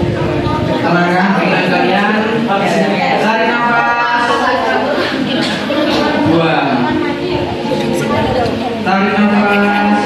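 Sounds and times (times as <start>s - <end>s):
man's voice over a microphone: 0.7s - 4.7s, 6.0s - 7.0s, 8.8s - 10.0s.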